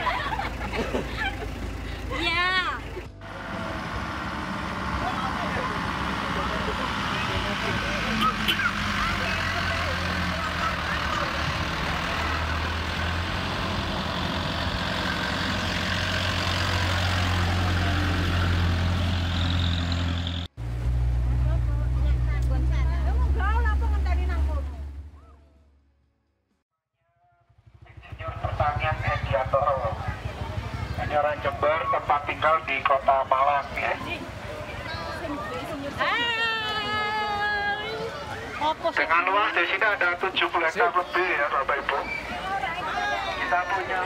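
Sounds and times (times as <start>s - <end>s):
voices chattering: 0.0s - 18.6s, 27.8s - 44.0s
vehicle engine droning: 0.0s - 26.6s, 27.4s - 44.0s.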